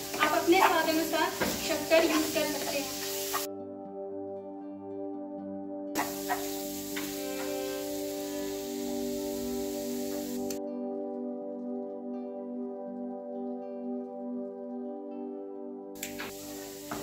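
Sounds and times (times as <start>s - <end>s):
food sizzling in a pan: 0.0s - 3.5s, 6.0s - 10.6s, 16.0s - 17.0s
calm instrumental music: 0.0s - 17.0s.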